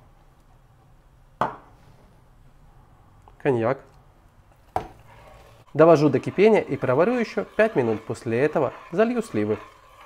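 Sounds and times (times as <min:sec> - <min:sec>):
marinade bubbling in saucepan: 0:05.0 - 0:10.0.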